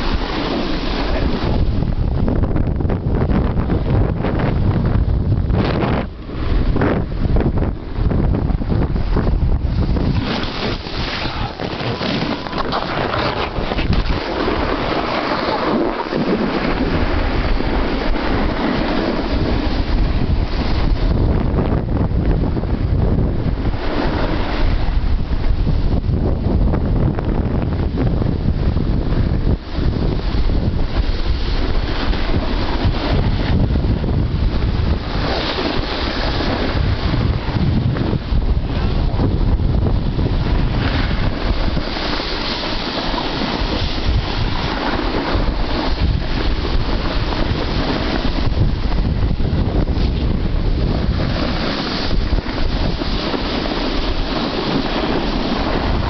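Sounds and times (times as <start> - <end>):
snowboard sliding over snow: 0.0 - 56.0
wind buffeting microphone: 0.0 - 56.0.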